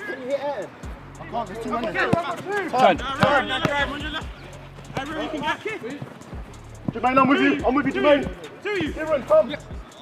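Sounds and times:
players shouting: 0.0 - 10.0.

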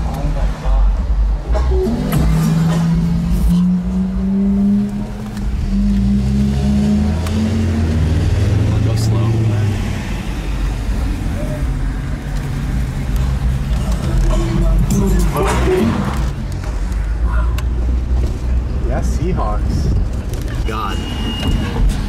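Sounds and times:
music playing: 0.7 - 4.0.

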